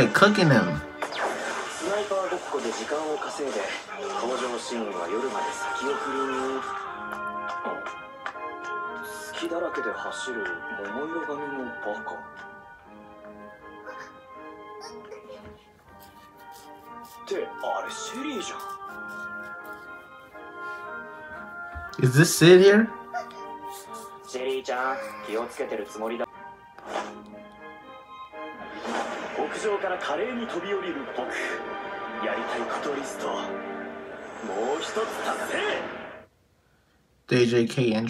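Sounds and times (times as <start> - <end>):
quiet background music: 0.0 - 36.4
person speaking: 22.0 - 25.6.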